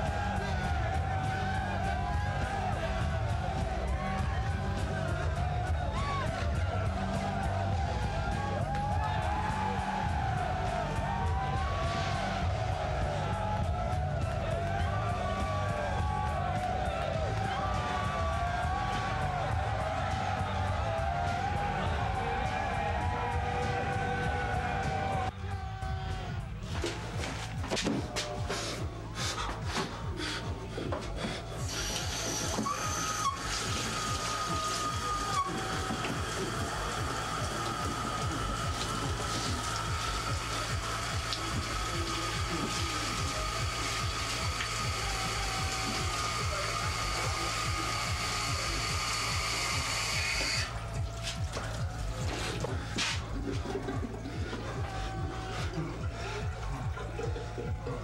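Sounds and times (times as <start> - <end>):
tap water running into sink: 31.9 - 54.9.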